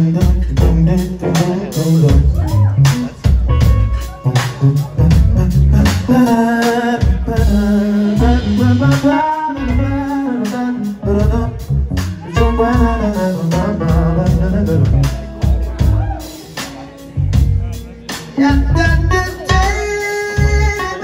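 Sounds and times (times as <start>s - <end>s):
bass guitar: 0.0s - 21.0s
drums: 0.0s - 21.0s
electric guitars: 0.0s - 21.0s
person singing: 0.0s - 21.0s.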